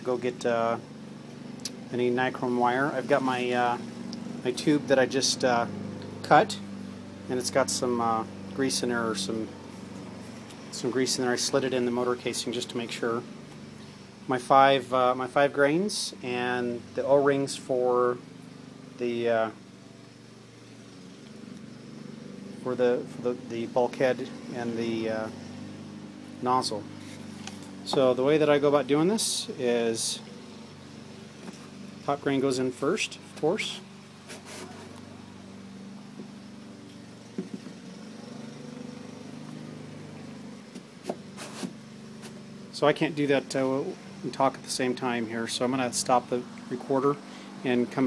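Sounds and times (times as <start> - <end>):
steady low hum: 0.0 - 48.0
light knocks and clicks: 37.3 - 37.8.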